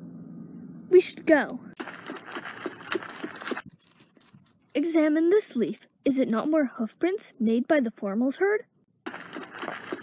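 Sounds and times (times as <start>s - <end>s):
dry grass rustling and crunching: 1.8s - 5.8s, 9.1s - 10.0s.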